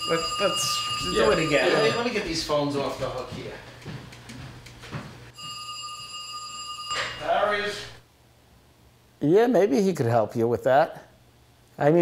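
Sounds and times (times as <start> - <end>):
telephone electronic tone: 0.0 - 2.2, 5.4 - 7.3.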